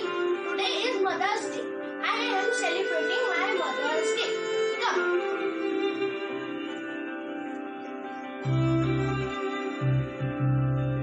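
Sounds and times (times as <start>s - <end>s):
music with long held tones: 0.0s - 11.0s
child speaking: 0.5s - 5.2s.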